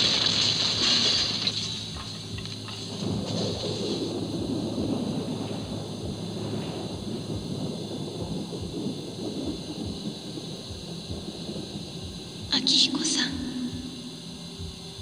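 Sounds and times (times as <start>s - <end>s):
low thumps: 0.0s - 12.6s
thunder-like rumbling and crackling: 0.0s - 15.0s.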